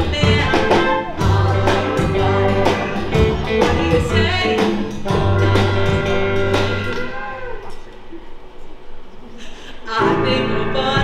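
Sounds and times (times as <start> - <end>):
live band playing: 0.0 - 8.0.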